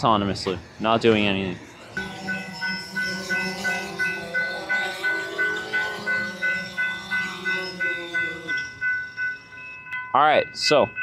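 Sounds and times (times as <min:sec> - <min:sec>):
drone propellers humming: 0:00.0 - 0:10.1
railroad crossing bell ringing: 0:00.0 - 0:11.0.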